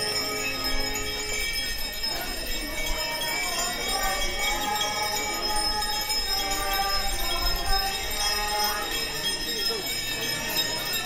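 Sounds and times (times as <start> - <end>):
crowd voices: 0.0 - 11.0
small hand bells ringing: 0.0 - 11.0.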